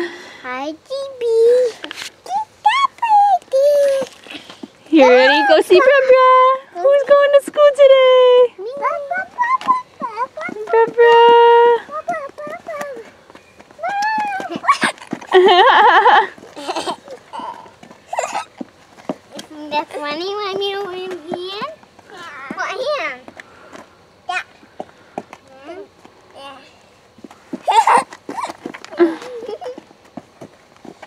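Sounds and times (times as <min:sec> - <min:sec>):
child squealing: 0:02.3 - 0:04.1, 0:13.8 - 0:15.0
child laughing: 0:02.3 - 0:04.2, 0:13.8 - 0:18.6, 0:27.6 - 0:29.9.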